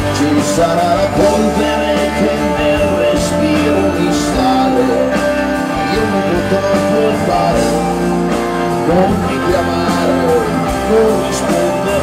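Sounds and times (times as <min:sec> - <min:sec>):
electric guitars: 0:00.0 - 0:12.0
live rock band playing: 0:00.0 - 0:12.0.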